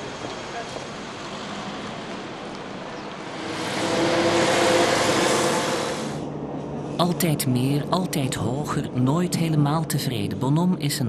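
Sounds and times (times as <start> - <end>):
motor vehicle passing: 0.0 - 7.3
city street traffic: 0.0 - 11.0.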